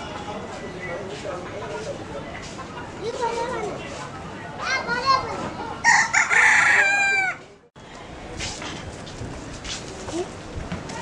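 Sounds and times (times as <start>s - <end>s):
rooster crowing: 5.8s - 7.4s.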